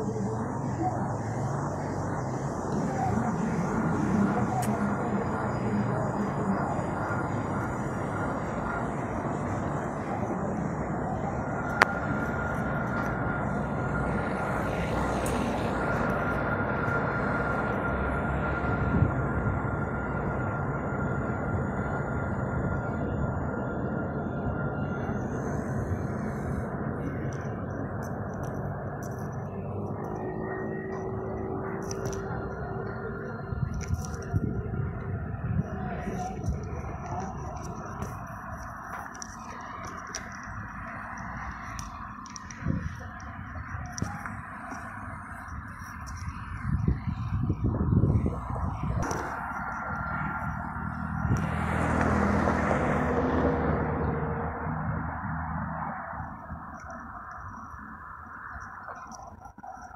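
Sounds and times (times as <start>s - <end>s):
high electric whine: 0.0s - 59.9s
tram rumbling on rails: 0.0s - 59.9s.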